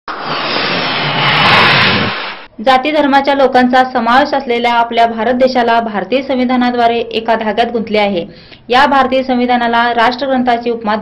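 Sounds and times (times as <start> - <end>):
whoosh rushing noise: 0.0 - 2.5.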